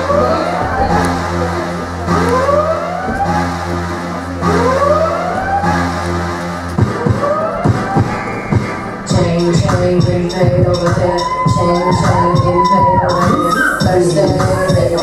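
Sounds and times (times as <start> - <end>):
siren-like sweeping tones: 11.0 - 14.3.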